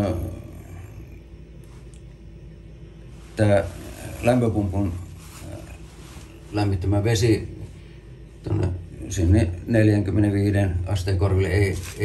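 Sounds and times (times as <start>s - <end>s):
man speaking: 3.4s - 7.7s, 8.4s - 12.0s.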